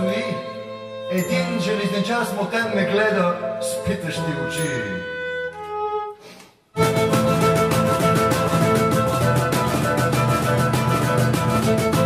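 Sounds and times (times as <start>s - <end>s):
live band playing: 6.8s - 12.0s.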